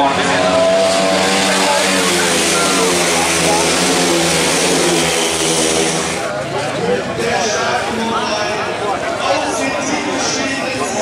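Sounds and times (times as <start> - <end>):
racing engines running together: 0.0 - 7.4.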